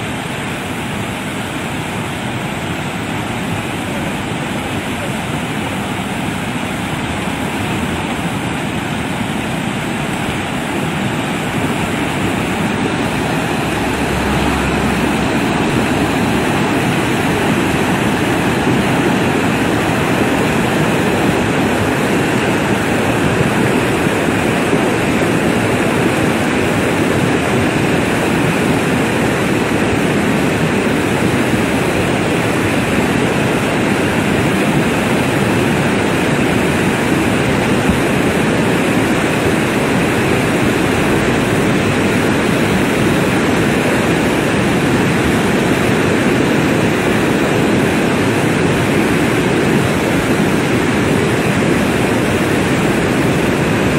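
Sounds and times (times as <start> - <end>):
mudflow rushing: 0.0 - 53.9.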